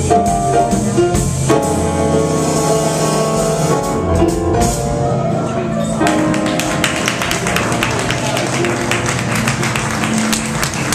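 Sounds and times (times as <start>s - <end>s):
jazz trio playing: 0.0s - 10.9s.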